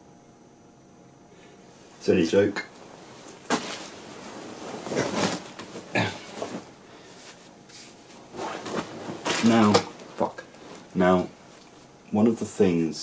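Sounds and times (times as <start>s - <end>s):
bedsheet rustling: 1.7s - 12.0s
man grunting: 5.9s - 6.3s.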